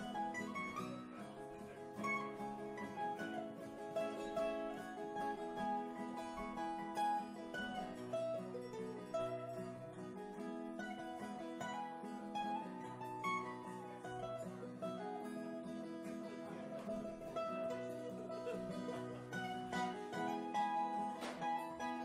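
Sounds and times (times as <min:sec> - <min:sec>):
acoustic guitar chords: 0:00.0 - 0:22.0
mandolin plucked notes: 0:00.0 - 0:22.0.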